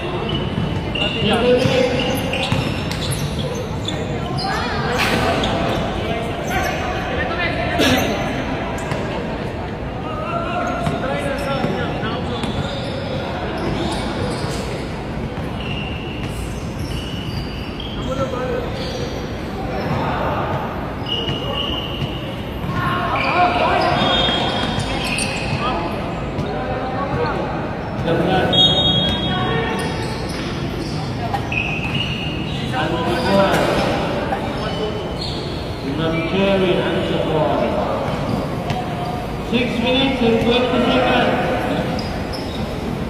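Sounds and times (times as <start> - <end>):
basketball bouncing on court: 0.3 - 3.5.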